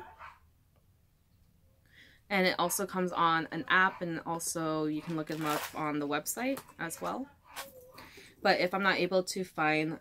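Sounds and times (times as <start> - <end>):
faint breath: 1.8 - 2.3, 7.9 - 8.4
person speaking: 2.3 - 7.3.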